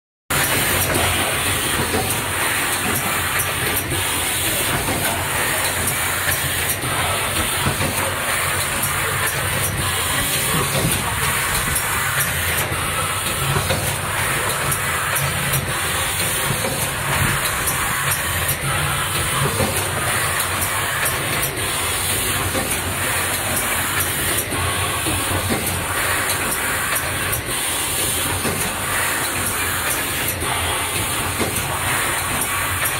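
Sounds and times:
machine hiss and hum: 0:00.3 - 0:32.9
machine sharp clack: 0:00.3 - 0:32.9.

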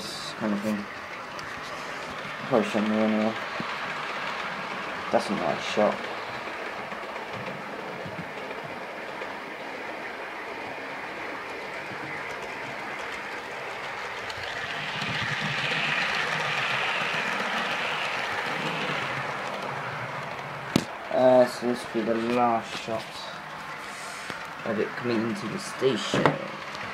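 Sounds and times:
model electric train running: 0:00.0 - 0:26.9.

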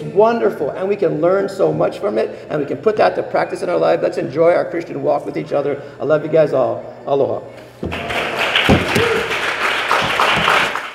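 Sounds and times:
crowd applauding: 0:07.8 - 0:10.9
loud claps or knocks: 0:07.8 - 0:10.9.

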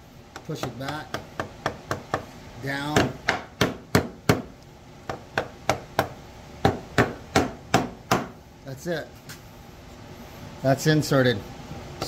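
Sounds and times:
wooden mallet tapping wood: 0:00.3 - 0:02.3, 0:02.9 - 0:04.5, 0:05.1 - 0:08.4.

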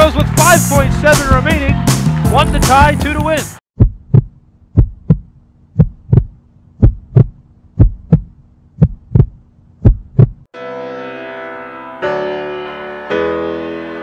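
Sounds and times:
heartbeat thumps: 0:03.8 - 0:10.5
piano chords: 0:10.6 - 0:14.0.

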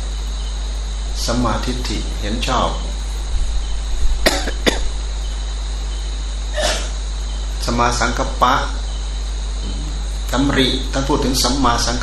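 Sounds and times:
low electrical hum: 0:00.0 - 0:12.0
person coughing: 0:04.2 - 0:04.9, 0:06.6 - 0:07.0.

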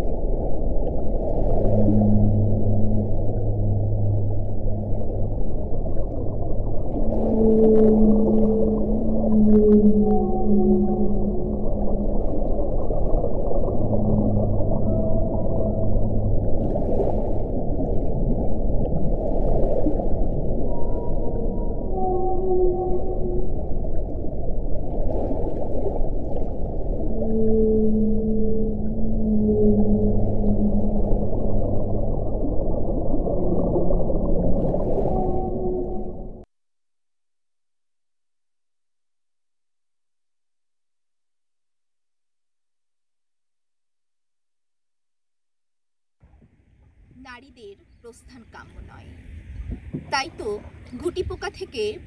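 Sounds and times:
whale song: 0:00.0 - 0:36.5.

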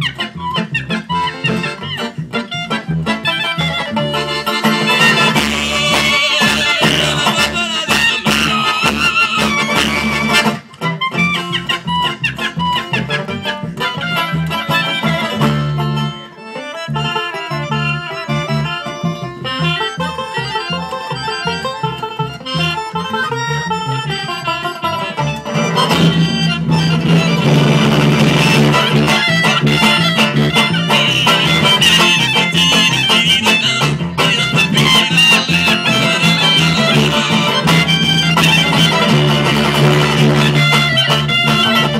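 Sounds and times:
acoustic band playing: 0:00.0 - 0:41.9.

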